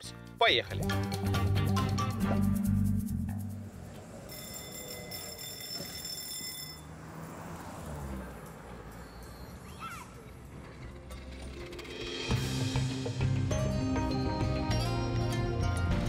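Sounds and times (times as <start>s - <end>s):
car passing: 3.2s - 12.9s
low traffic noise: 3.3s - 12.3s
high steady ringing: 4.1s - 7.0s.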